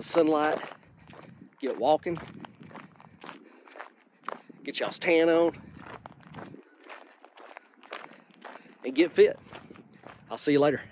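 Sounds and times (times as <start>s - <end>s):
footsteps on gravel: 0.0s - 10.9s.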